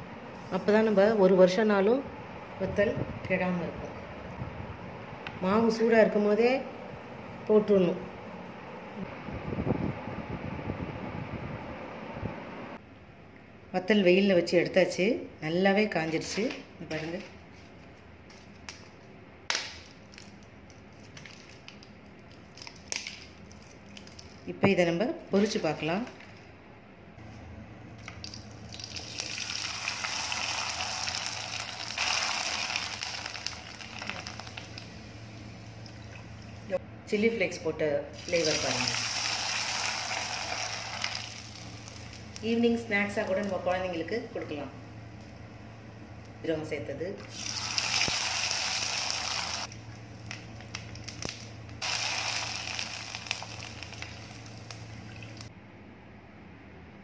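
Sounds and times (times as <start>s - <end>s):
papad sizzling in hot oil: 28.2s - 36.8s, 38.2s - 42.5s, 47.3s - 55.5s.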